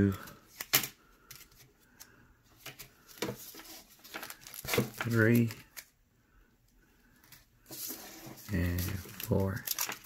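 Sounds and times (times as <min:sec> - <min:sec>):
packaging rustling: 0:02.6 - 0:05.9, 0:07.3 - 0:10.0.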